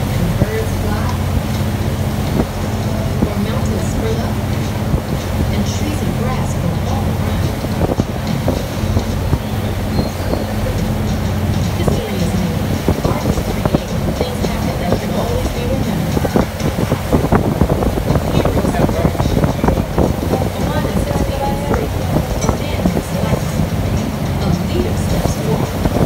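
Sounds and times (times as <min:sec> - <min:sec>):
ferry engines droning: 0:00.0 - 0:26.0
indistinct passenger chatter: 0:00.0 - 0:26.0
wind and water rushing: 0:00.0 - 0:26.0.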